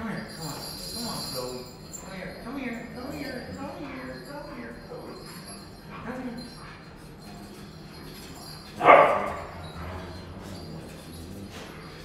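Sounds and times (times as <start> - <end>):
dog barking sharply: 8.8 - 9.3.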